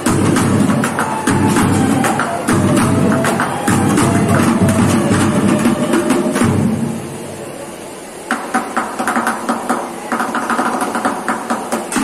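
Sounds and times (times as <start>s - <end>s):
sticks beating plastic buckets: 0.0s - 5.2s.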